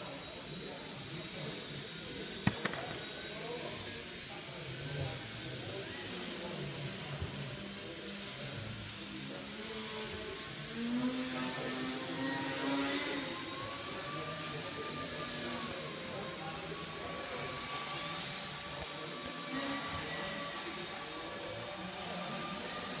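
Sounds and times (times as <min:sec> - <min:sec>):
model plane motor whining: 0:00.0 - 0:23.0
murmur of voices: 0:00.0 - 0:23.0.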